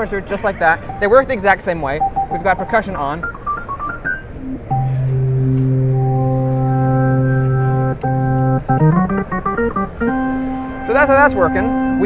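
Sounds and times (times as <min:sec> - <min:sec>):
organ chords and notes: 0:00.8 - 0:12.0.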